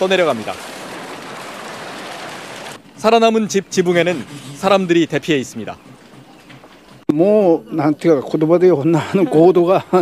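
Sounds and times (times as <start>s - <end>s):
floodwater rushing: 0.0s - 7.0s.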